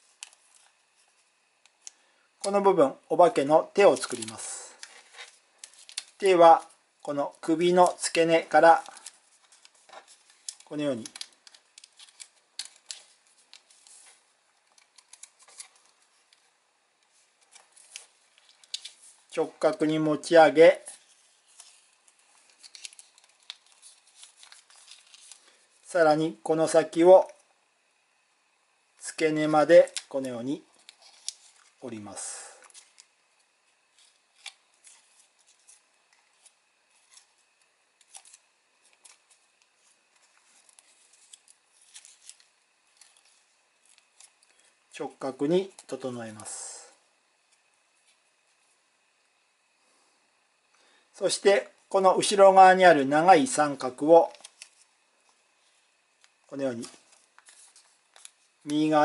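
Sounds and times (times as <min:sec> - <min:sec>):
paper clicks and crinkles: 0:00.0 - 0:02.0, 0:03.8 - 0:25.9, 0:29.6 - 0:31.9, 0:32.5 - 0:44.9, 0:54.1 - 0:59.0.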